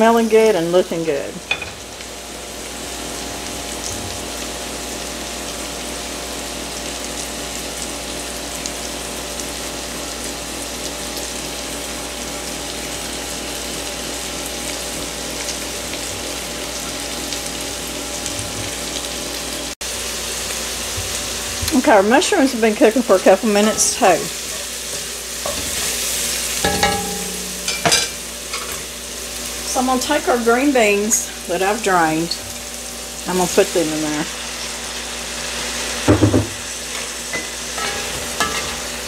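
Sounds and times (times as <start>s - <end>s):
food sizzling in fat: 0.0s - 39.0s.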